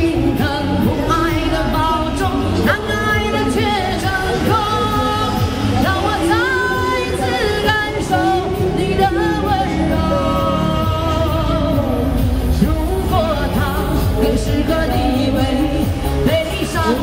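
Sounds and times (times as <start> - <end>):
woman singing pop ballad: 0.0 - 17.0.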